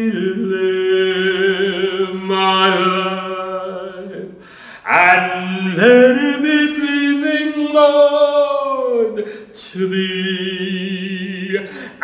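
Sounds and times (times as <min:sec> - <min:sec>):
man singing a long vowel: 0:00.0 - 0:12.0.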